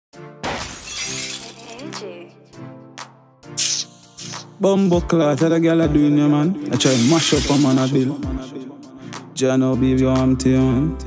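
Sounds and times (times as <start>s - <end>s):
glass shattering: 0.4s - 1.8s, 6.8s - 8.0s.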